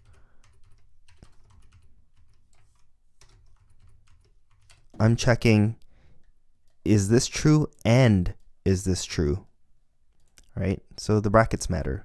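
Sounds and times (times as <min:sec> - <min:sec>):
typing on computer keyboard: 0:00.0 - 0:05.0.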